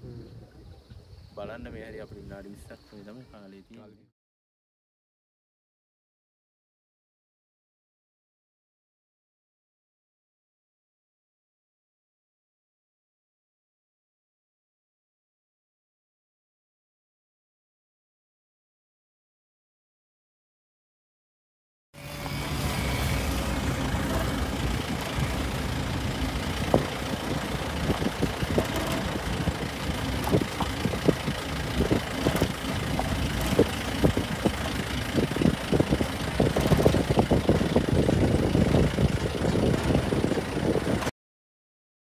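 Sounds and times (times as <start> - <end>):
vehicle engine running: 22.0 - 41.1
bodywork knocking and rattling: 24.0 - 41.1.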